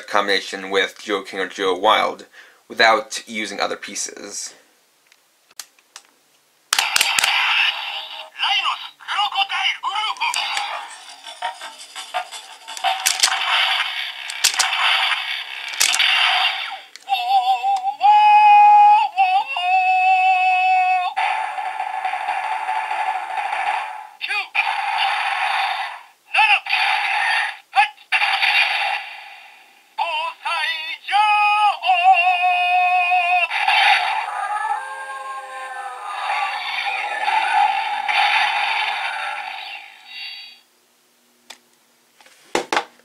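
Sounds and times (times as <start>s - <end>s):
synthesized sung music from toy speaker: 17.0s - 20.0s.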